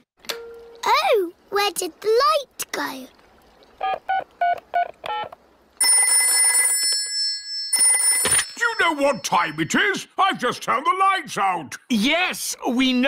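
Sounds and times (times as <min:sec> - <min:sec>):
phone dialling beeps: 0:03.8 - 0:07.0
telephone bell ringing: 0:05.8 - 0:09.6.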